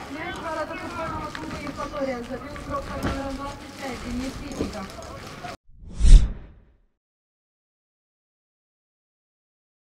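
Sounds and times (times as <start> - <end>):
whoosh: 5.7 - 6.7.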